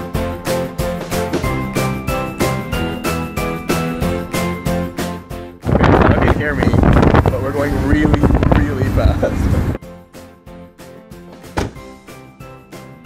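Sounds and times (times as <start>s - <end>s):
background music: 0.0s - 13.0s
wind blasting across microphone: 5.6s - 9.8s.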